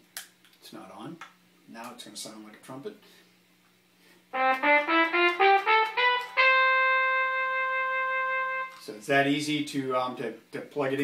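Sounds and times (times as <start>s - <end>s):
synthesized trumpet note: 4.3s - 9.0s.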